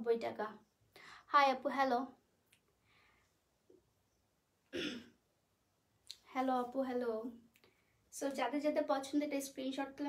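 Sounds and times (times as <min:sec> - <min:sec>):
woman clearing throat: 0:04.8 - 0:05.2.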